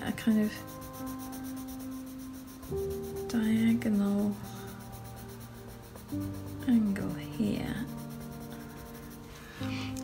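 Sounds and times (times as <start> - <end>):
pencil scratching on paper: 0.0 - 10.0
soft music of sustained chords: 0.0 - 10.0.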